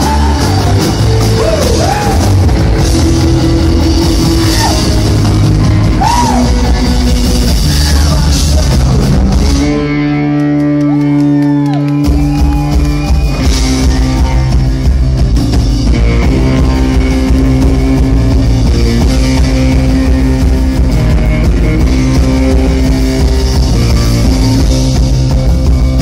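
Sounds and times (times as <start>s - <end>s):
drum kit: 0.0s - 26.0s
electric guitars: 0.0s - 26.0s.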